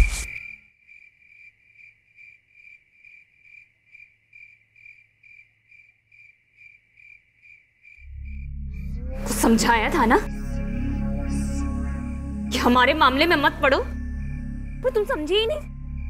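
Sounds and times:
cricket chirping: 0.0s - 9.4s, 10.2s - 16.0s
low music drone: 8.0s - 16.0s.

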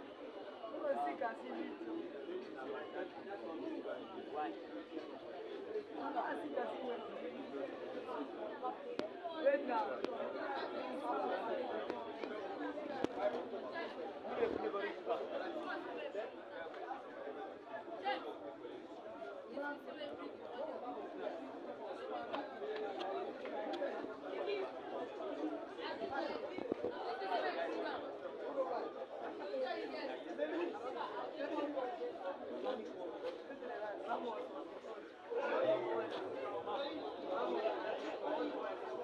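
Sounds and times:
chatter of many voices: 0.0s - 39.0s.

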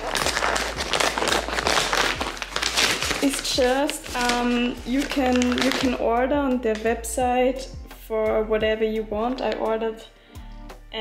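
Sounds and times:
paper tearing and crinkling: 0.0s - 6.0s.

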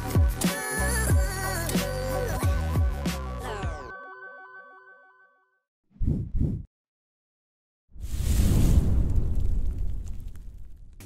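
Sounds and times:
fiery boom with crackles: 8.0s - 11.0s.

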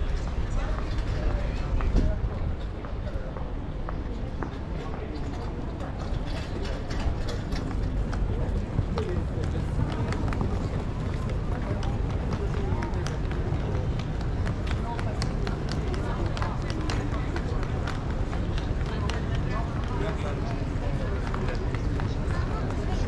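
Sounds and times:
people talking faintly: 0.0s - 23.0s.

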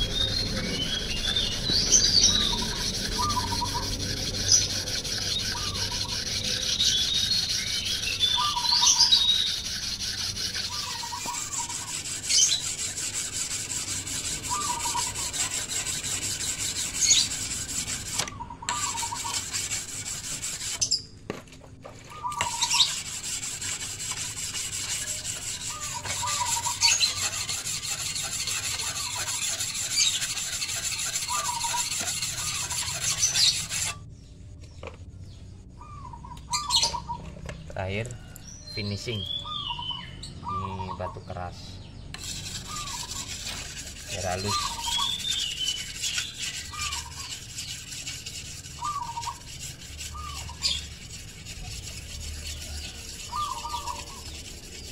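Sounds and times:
whetstone scraping steel blade: 0.0s - 21.0s, 22.3s - 34.0s, 42.2s - 54.9s.

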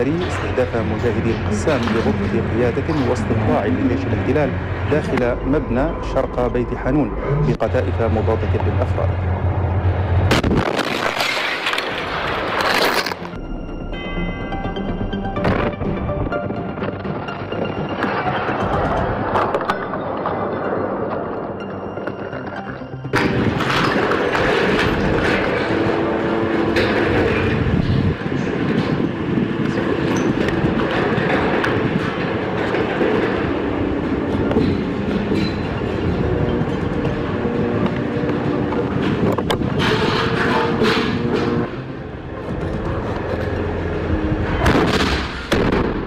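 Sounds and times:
tracks clattering: 0.0s - 13.4s, 14.0s - 45.9s
armoured vehicle engine droning: 0.0s - 46.0s
loud blast: 10.2s - 12.9s, 44.6s - 46.0s.

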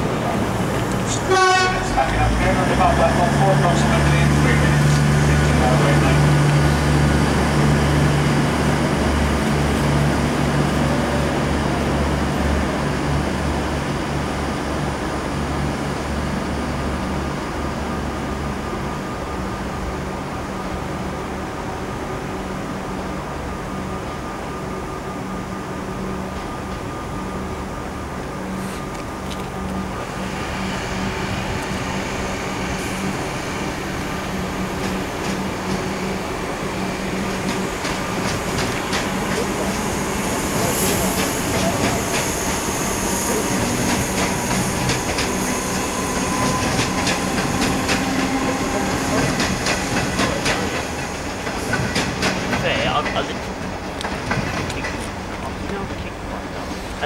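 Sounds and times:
electric train passing: 0.0s - 57.0s
train wheels clacking: 33.9s - 56.9s.

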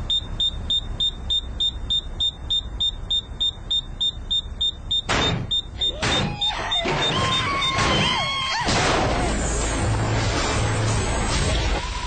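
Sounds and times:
rapid electronic alarm beeping: 0.0s - 7.8s.

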